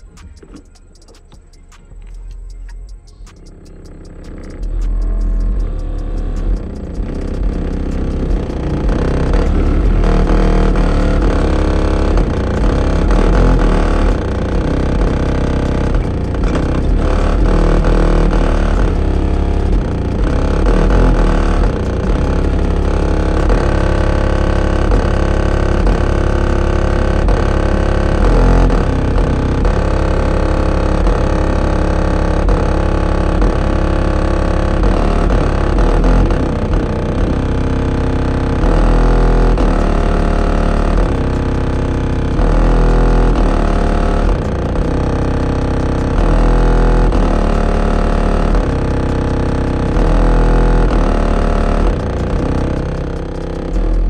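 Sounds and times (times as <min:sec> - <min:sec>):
bass-heavy music from car subwoofers: 0:00.0 - 0:54.0.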